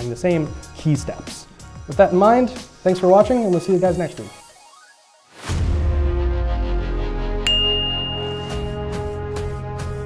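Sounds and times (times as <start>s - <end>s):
outro music: 5.6s - 10.0s
bright notification bell ding: 7.5s - 9.0s.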